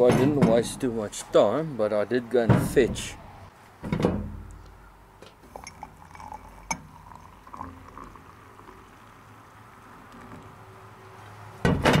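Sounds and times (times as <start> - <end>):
water pouring into a mug: 5.5 - 9.6.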